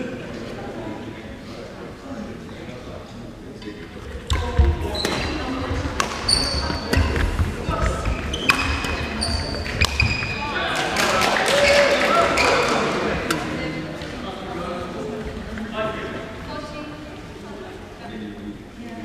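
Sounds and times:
racket hitting shuttlecock: 4.3 - 10.4
shoes squeaking on court: 4.3 - 10.6.

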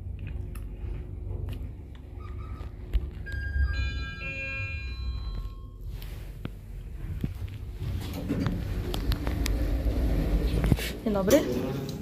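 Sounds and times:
lift arrival chime: 3.3 - 6.0.

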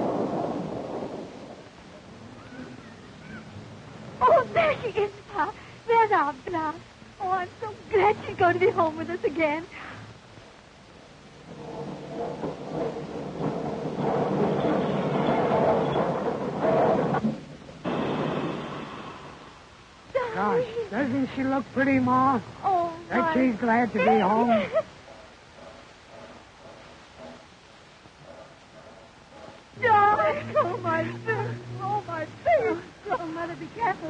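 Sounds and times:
steam locomotive rumbling: 0.0 - 20.0, 20.6 - 34.0
faint film soundtrack: 0.0 - 34.0.

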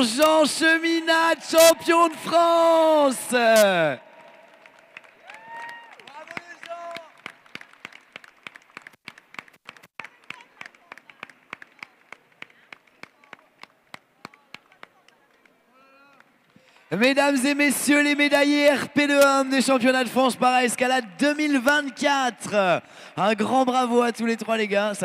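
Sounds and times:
audience applause: 3.6 - 13.7.

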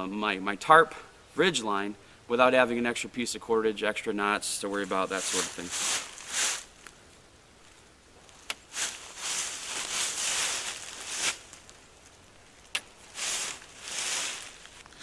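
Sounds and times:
nylon mesh net rustling: 4.8 - 6.9, 8.3 - 12.1, 13.0 - 14.9.

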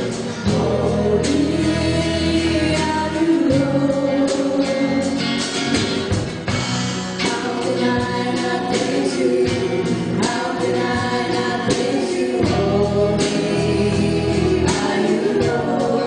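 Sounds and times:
congregation singing praise song: 0.0 - 5.9, 7.2 - 16.0
drums: 0.0 - 16.0
electric guitar: 0.0 - 16.0.

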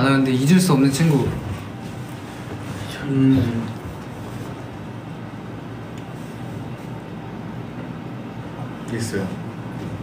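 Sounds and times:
room hum and hiss: 0.0 - 10.0.

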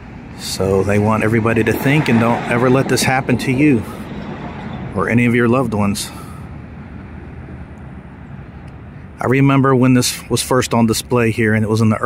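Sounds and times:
distant traffic rumble: 0.0 - 12.0.

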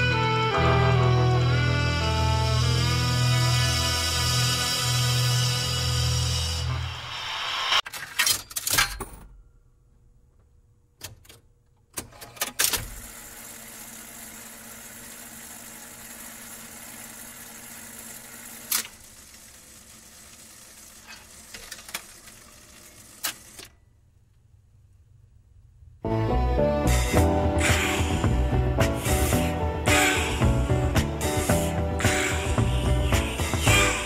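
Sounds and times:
song music: 0.0 - 7.8, 26.0 - 34.0
jukebox mechanism clicks and clunks: 7.8 - 9.4, 11.0 - 13.1, 18.6 - 19.0, 21.0 - 22.5.

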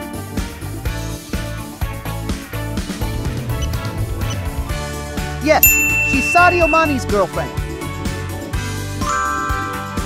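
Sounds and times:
bright ding chime: 5.6 - 7.5.

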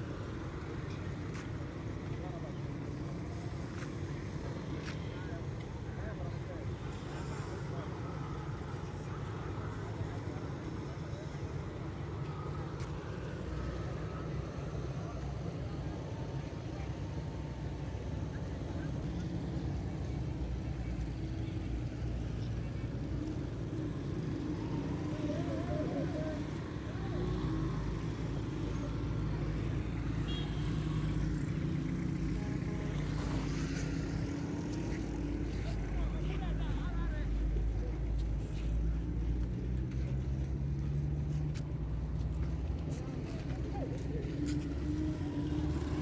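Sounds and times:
road traffic rumble: 0.0 - 46.0.

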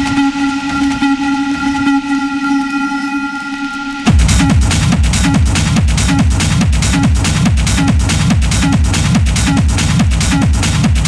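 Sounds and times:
held synth chord: 0.0 - 6.1.

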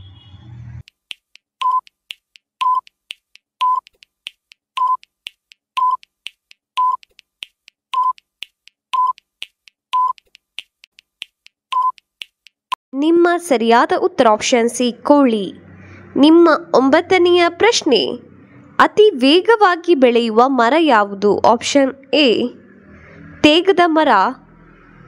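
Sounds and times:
timer clicking ticks: 0.8 - 12.7
short timer beeps: 1.6 - 2.0, 2.6 - 3.0, 3.6 - 4.0, 4.8 - 5.1, 5.8 - 6.1, 6.8 - 7.1, 7.9 - 8.3, 8.9 - 9.3, 10.0 - 10.3, 11.7 - 12.1.

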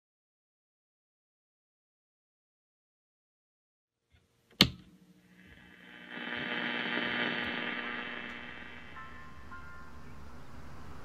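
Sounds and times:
sharp click: 4.5 - 4.9
steady hum of held tones: 4.9 - 11.0.

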